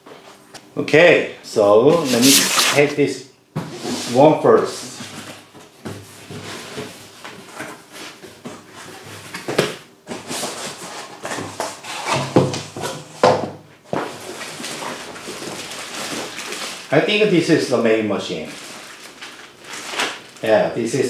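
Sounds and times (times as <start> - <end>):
cardboard box flaps opening: 1.9 - 2.9
plastic wrapping rustling and crinkling: 1.9 - 2.9, 13.9 - 20.6.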